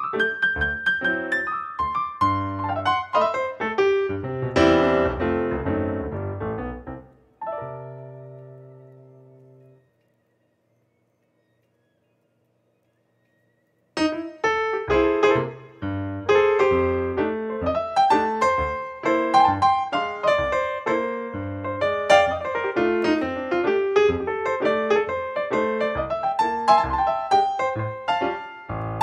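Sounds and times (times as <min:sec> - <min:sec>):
solo piano music: 0:00.0 - 0:09.9, 0:14.0 - 0:29.0.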